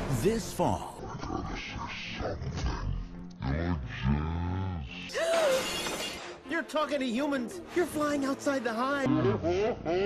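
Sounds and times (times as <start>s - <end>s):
slowed-down cartoon voice groaning: 3.4s - 5.3s.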